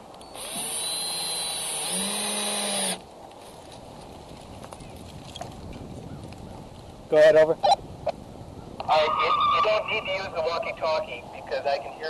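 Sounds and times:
walkie-talkie static hiss: 8.8 - 12.0.

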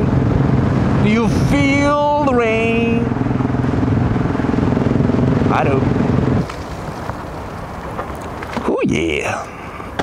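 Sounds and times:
motorcycle engine running steadily: 0.0 - 8.1.

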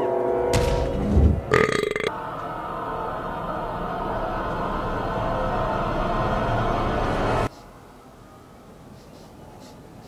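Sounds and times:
eerie music drone: 2.0 - 7.5.

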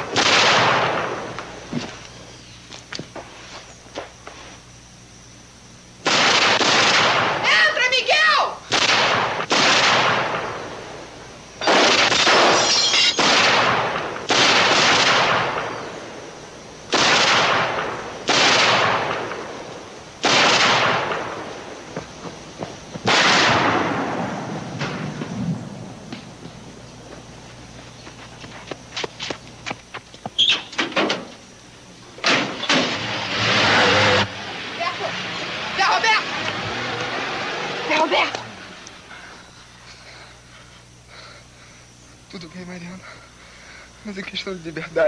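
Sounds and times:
gunshots: 0.0 - 1.4, 6.0 - 7.4, 8.7 - 10.6, 11.6 - 15.8, 16.9 - 19.6, 20.2 - 21.6, 23.0 - 25.5, 32.2 - 33.6
person shouting: 7.4 - 8.6.

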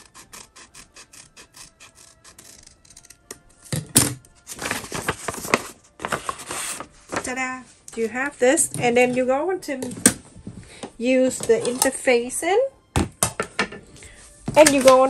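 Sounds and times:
scissors snipping paper: 0.0 - 3.2
paper rustling: 4.4 - 7.8.

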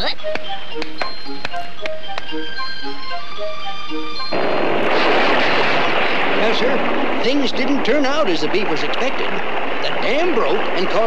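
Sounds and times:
loud rush of water: 4.4 - 11.0.

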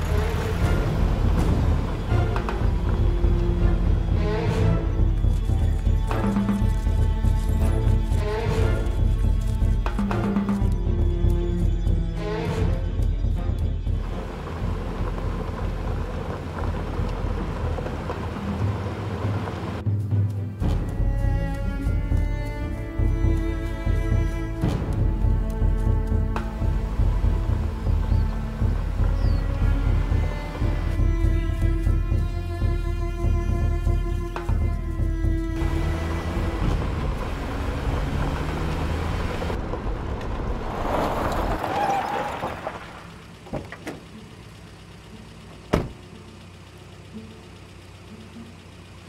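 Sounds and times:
car engine running: 0.0 - 49.0
tyre and road noise: 0.0 - 49.0
vehicle rumbling over rough ground: 0.0 - 49.0.

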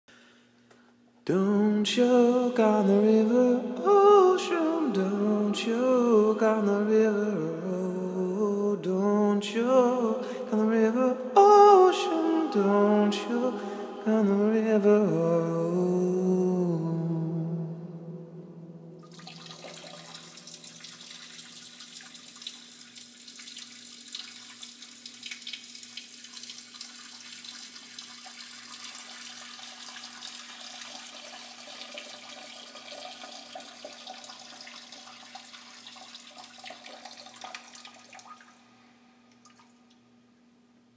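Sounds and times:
steady low hum: 0.1 - 21.4
person singing: 1.3 - 19.0
trickling water with splashes: 19.0 - 40.0.

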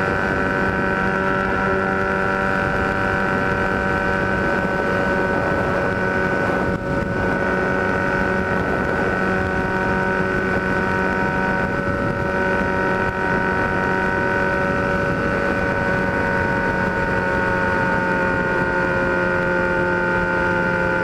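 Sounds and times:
motorcycle engine cruising: 0.0 - 21.0
wind noise on microphone: 0.0 - 21.0.

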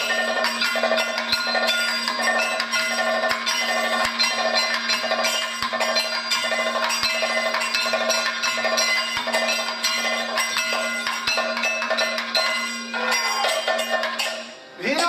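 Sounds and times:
ringing metal percussion: 0.0 - 15.0.

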